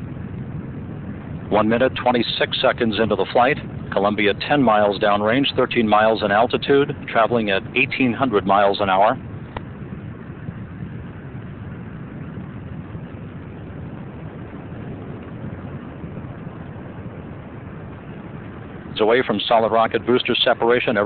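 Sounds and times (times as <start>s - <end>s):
distant rocket engine rumble: 0.0s - 21.0s.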